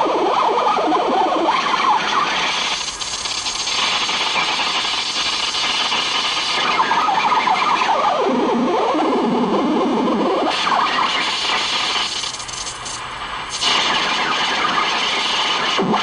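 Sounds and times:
siren-like electronic warbling: 0.0 - 4.8, 6.6 - 11.3.

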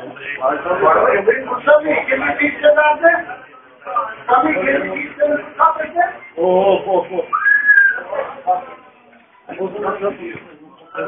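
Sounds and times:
person whistling: 7.3 - 8.0.

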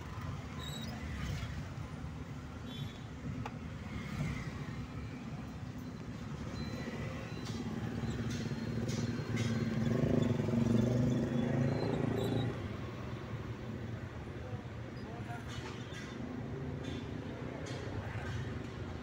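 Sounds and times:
car engine and road noise: 0.0 - 19.0.

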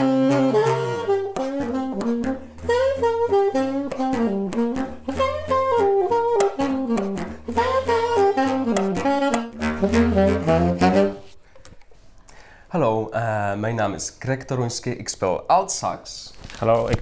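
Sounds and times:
alto saxophone melody: 0.0 - 11.4
bass clarinet low notes: 0.0 - 11.4.

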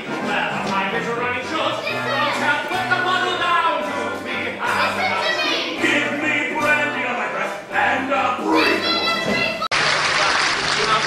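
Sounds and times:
men singing together: 0.0 - 8.6.

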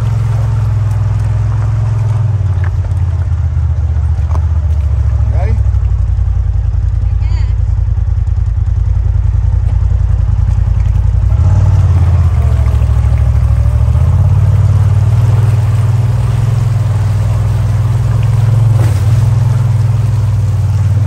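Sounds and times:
off-road vehicle engine running: 0.0 - 21.0
water washing around tyres: 0.0 - 21.0.

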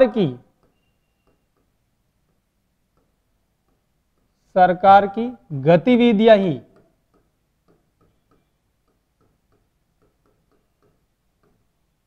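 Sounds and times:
stylus tapping on screen: 0.0 - 5.2, 5.9 - 12.0.

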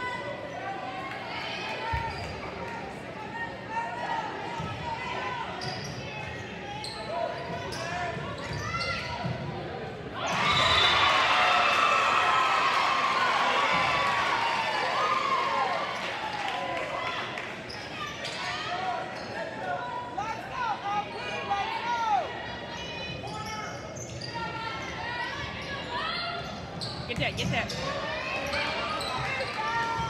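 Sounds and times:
crowd voices in gym: 0.0 - 30.0
sneakers squeaking on court: 25.6 - 30.0.

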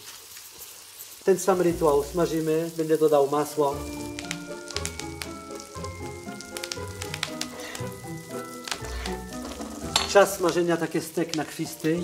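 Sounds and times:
steak sizzling in a pan: 0.0 - 12.0
background music with held notes: 1.6 - 12.0.

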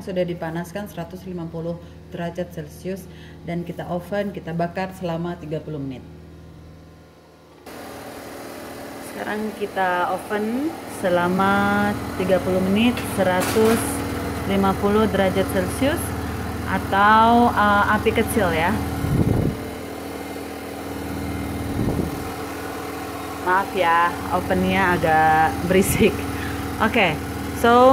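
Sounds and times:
oven running noise: 0.1 - 27.9.

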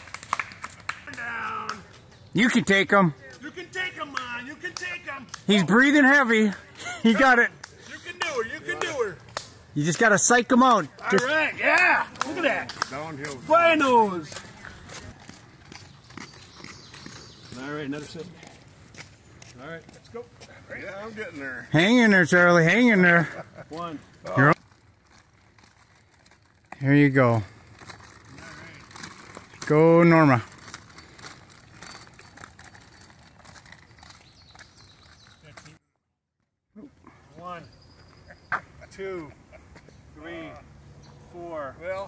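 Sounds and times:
footsteps on asphalt: 0.0 - 22.2, 23.6 - 35.8, 39.6 - 40.2.

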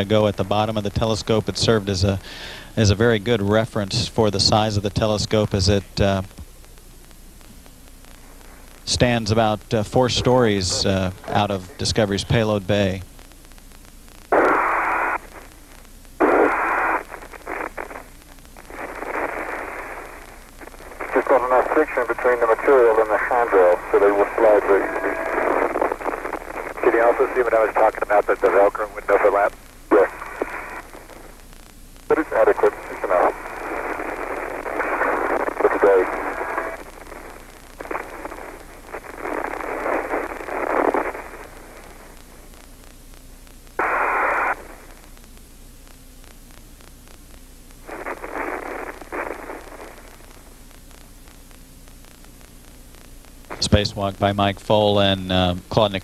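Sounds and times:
voices over radio: 0.0 - 6.4, 8.9 - 13.0, 16.2 - 18.0, 18.6 - 31.3, 32.1 - 42.1, 47.9 - 50.4, 53.5 - 56.0
radio hiss: 0.0 - 56.0.

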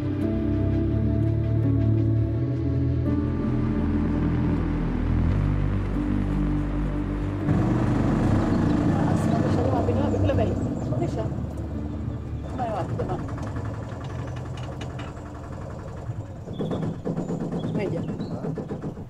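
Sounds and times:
music: 0.0 - 15.5
auto-rickshaw engine idling: 3.2 - 19.0
indistinct voices: 7.5 - 15.0.

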